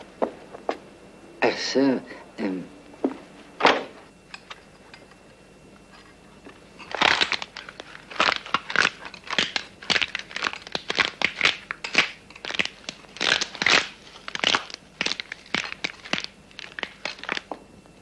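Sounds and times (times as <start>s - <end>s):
person chewing crunchy food: 6.8s - 17.5s.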